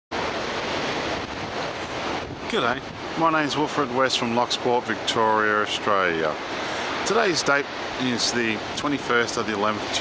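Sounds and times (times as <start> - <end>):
ocean surf breaking: 0.1 - 10.0
wind on microphone: 0.2 - 10.0.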